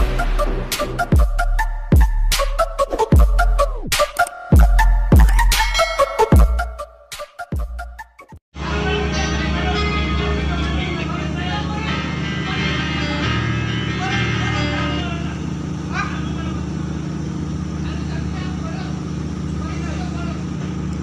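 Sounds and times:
music playing: 0:00.0 - 0:16.7
ship machinery drone: 0:08.6 - 0:21.0.

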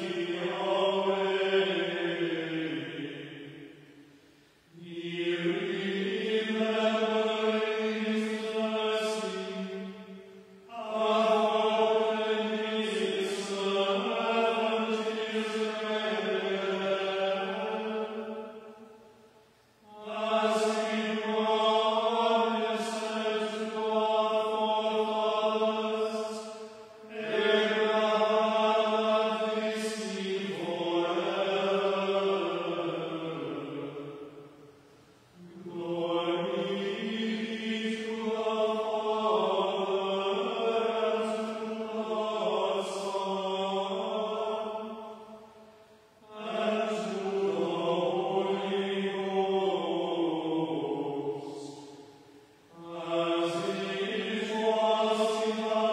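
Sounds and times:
voices chanting in unison: 0:00.0 - 0:04.0, 0:04.7 - 0:18.9, 0:19.8 - 0:34.5, 0:35.4 - 0:45.5, 0:46.2 - 0:55.9.

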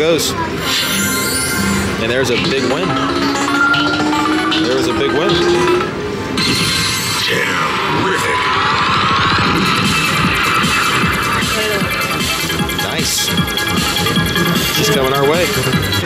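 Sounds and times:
slot machine electronic music: 0:00.0 - 0:07.8, 0:09.1 - 0:16.0.

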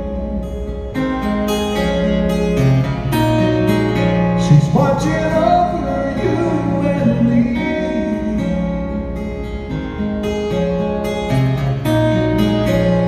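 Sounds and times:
acoustic guitar playing: 0:00.0 - 0:13.0.

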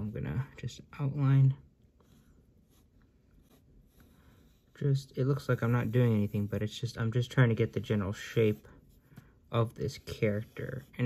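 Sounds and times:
pencil scratching on paper: 0:01.9 - 0:11.0.

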